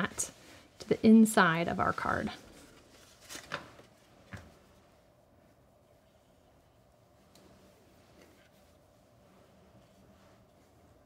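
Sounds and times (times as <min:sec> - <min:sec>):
paper rustles: 0:02.3 - 0:04.5.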